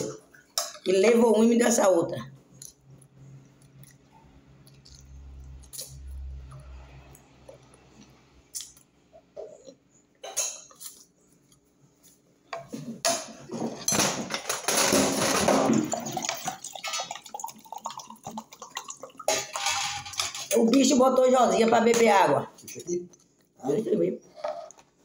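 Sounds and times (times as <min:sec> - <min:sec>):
tableware clinking and clattering: 0:09.3 - 0:11.0, 0:12.6 - 0:18.1, 0:18.8 - 0:22.9.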